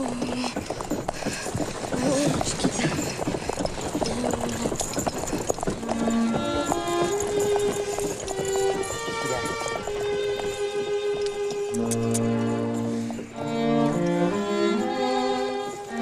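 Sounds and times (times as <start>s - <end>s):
horse hooves clopping: 0.0s - 16.0s
wagon rattling: 0.0s - 16.0s
slow bowed-string melody: 5.8s - 16.0s.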